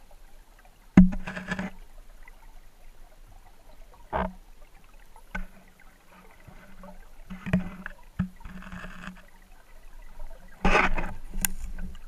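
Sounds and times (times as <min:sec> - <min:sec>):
water swishing: 0:00.0 - 0:12.0.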